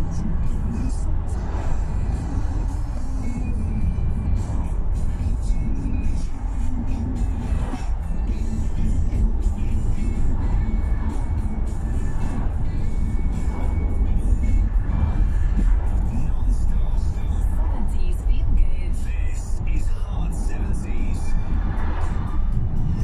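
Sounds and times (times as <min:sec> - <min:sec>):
car road and engine rumble: 0:00.0 - 0:23.0
music playing in car: 0:00.0 - 0:23.0.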